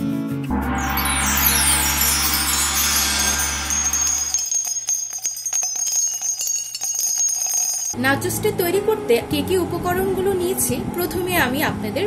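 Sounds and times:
rapid tinkling chime strikes: 0:00.5 - 0:08.0
steady high ringing tone: 0:00.5 - 0:08.0.

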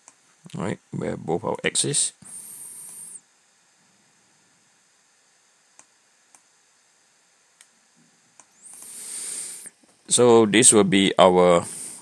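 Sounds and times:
hiss: 0:08.5 - 0:09.7.

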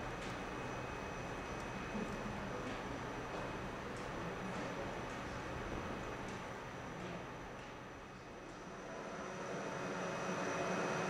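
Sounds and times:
faint high whine: 0:00.0 - 0:03.3, 0:07.9 - 0:11.0
locomotive low hum and hiss: 0:00.0 - 0:11.0.

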